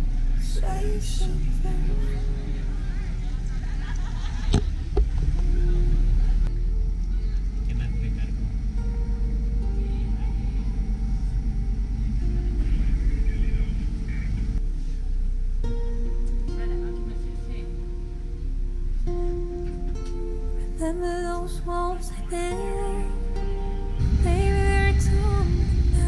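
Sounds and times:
boat motor rumbling: 0:00.0 - 0:26.0.

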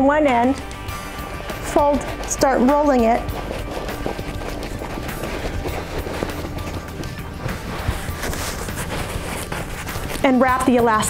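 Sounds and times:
soft background music: 0:00.0 - 0:11.0
fabric mat rustling: 0:00.6 - 0:11.0.

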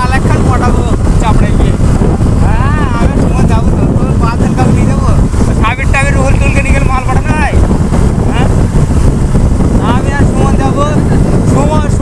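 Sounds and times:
motorcycle engine running: 0:00.0 - 0:12.0
wind noise on microphone: 0:00.0 - 0:12.0.

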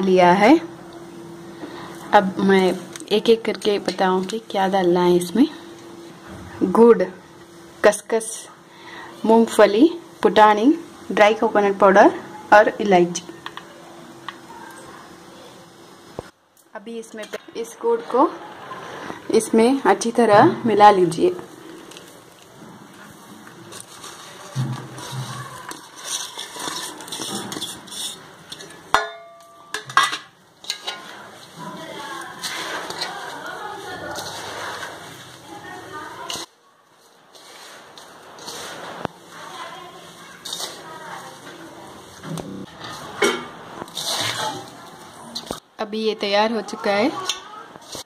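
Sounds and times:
hands scraping food in steel pan: 0:22.8 - 0:36.5, 0:37.3 - 0:39.7, 0:40.3 - 0:41.7, 0:42.3 - 0:45.6.

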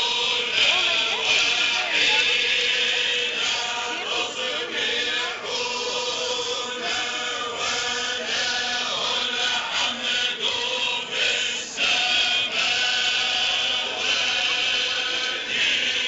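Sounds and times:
group of voices chanting: 0:00.0 - 0:16.0.

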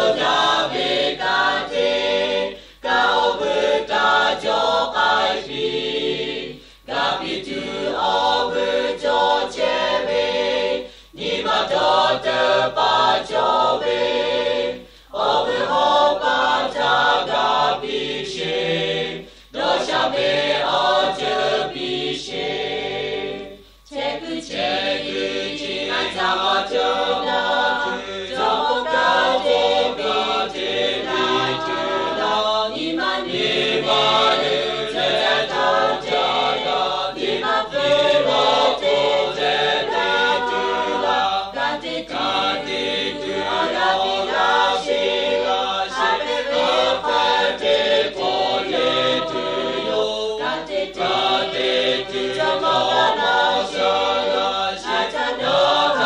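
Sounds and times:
choir singing: 0:00.0 - 0:56.0.

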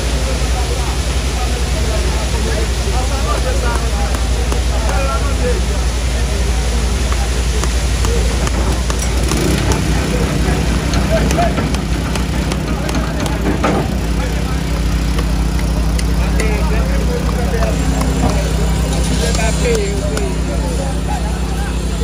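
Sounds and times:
diesel engine humming: 0:00.0 - 0:22.0
many voices chattering: 0:00.0 - 0:22.0
concrete pouring: 0:00.6 - 0:22.0.

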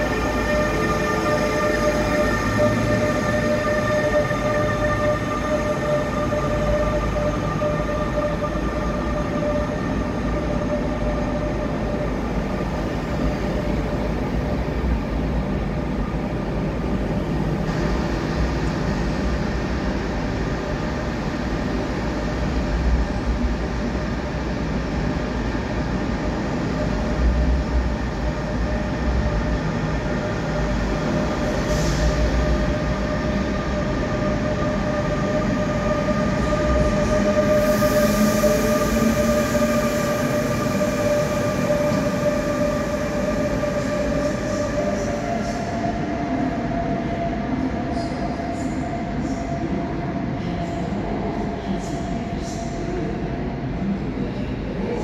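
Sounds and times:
locomotive traction whine: 0:00.0 - 0:49.4
train rumble and rail noise: 0:00.0 - 0:55.0.

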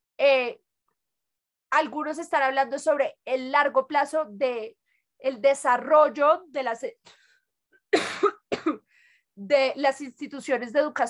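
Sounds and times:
woman coughing: 0:08.0 - 0:08.9.

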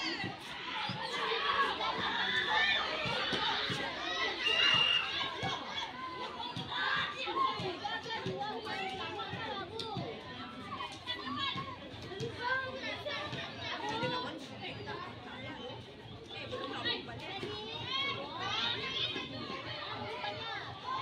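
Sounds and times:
girls shouting and calling out: 0:00.0 - 0:10.0.

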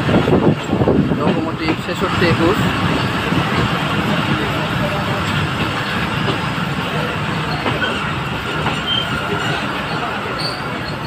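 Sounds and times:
train wheels rumbling on rail: 0:00.0 - 0:11.0
high wheel squeal: 0:07.3 - 0:11.0.

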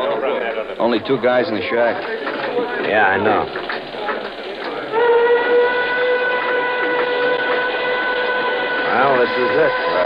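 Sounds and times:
steam whistle long note: 0:04.9 - 0:10.0.

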